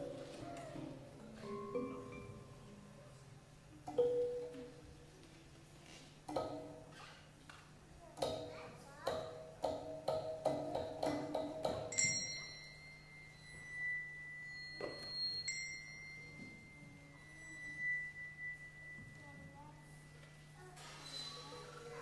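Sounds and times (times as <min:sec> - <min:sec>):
low steady hum: 0:11.1 - 0:22.0
high held tone: 0:12.0 - 0:20.4.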